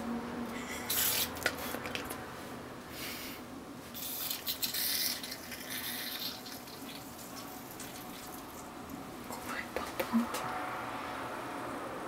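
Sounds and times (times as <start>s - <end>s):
faint fizz: 3.9s - 8.8s.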